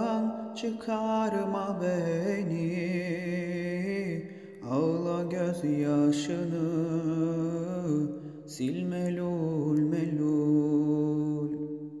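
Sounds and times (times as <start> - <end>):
man singing long sustained note: 0.0 - 12.0.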